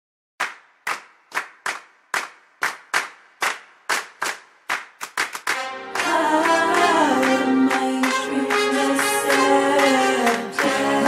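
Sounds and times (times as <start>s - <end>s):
rhythmic hand claps: 0.4s - 11.0s.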